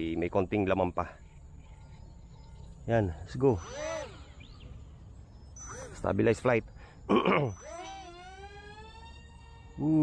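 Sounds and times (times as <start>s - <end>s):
faint high motor whine: 0.0s - 10.0s.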